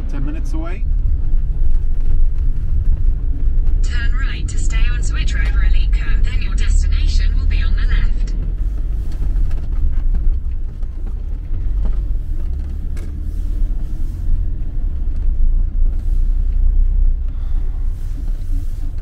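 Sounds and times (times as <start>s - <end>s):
engine and tyre rumble: 0.0s - 19.0s.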